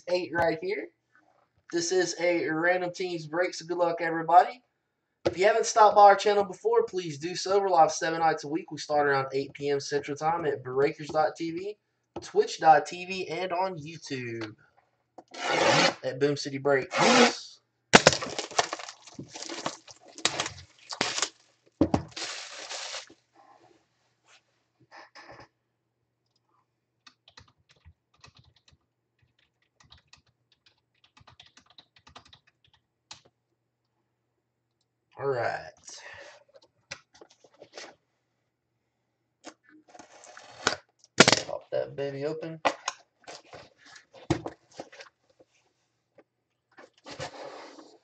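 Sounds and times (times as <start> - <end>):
cardboard box scraping on paper: 15.4 - 16.0
plastic shrink-wrap tearing: 18.0 - 21.4, 22.1 - 23.1.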